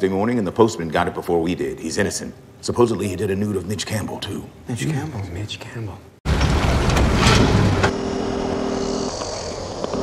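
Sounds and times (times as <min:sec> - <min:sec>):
motor vehicle rushing and humming: 0:06.3 - 0:10.0.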